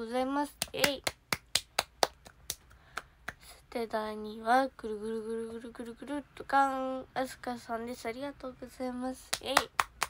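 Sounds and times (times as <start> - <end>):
person clapping hands: 0.6 - 3.5, 9.3 - 10.0.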